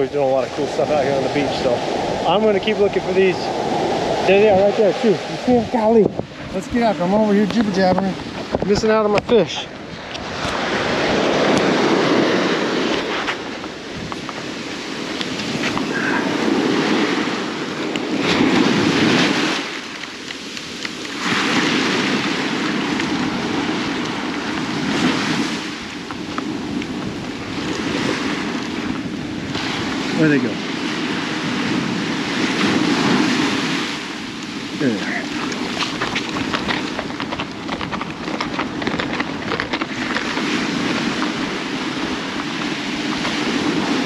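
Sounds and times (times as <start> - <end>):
small surf waves washing: 0.0 - 44.0
wind on microphone: 0.0 - 44.0.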